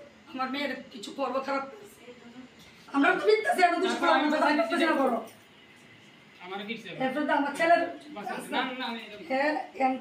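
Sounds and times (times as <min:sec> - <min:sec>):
woman speaking: 0:09.2 - 0:10.0.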